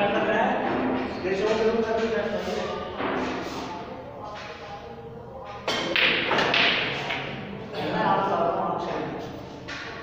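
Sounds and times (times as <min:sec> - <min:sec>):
cue striking ball: 0:05.7 - 0:07.4.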